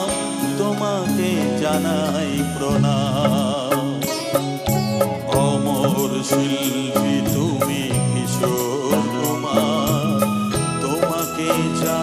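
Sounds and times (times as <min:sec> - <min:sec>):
live band film song: 0:00.0 - 0:12.0.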